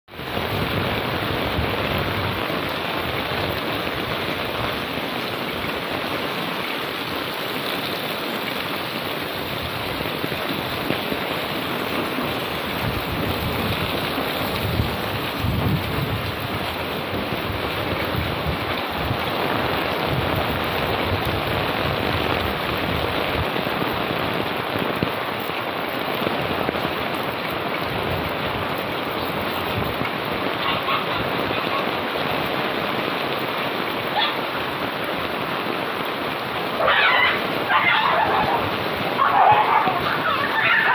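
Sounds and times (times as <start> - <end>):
heavy rain on an umbrella: 0.0 - 40.9.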